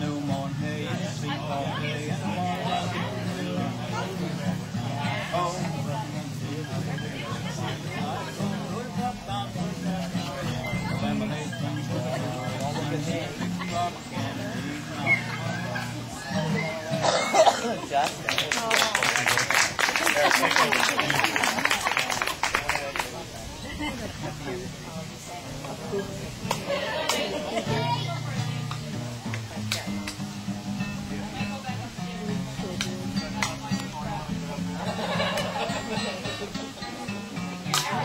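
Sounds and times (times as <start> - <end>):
acoustic guitar: 0.0 - 38.0
people's voices: 0.0 - 38.0
person coughing: 17.0 - 17.8.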